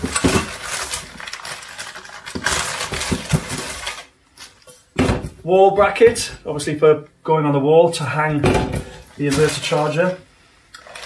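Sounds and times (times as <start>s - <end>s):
plastic bag rustling: 0.0s - 6.4s, 8.8s - 11.0s.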